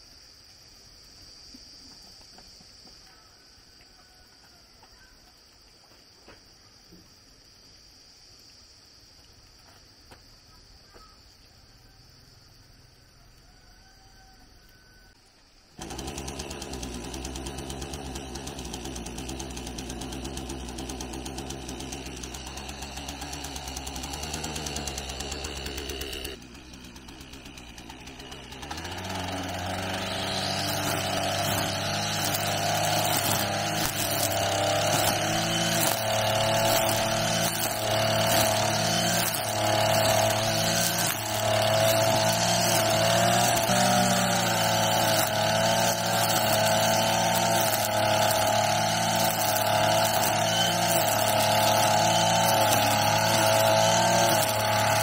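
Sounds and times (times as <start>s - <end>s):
string trimmer engine: 15.8s - 55.0s
trimmer cutting grass: 15.8s - 55.0s.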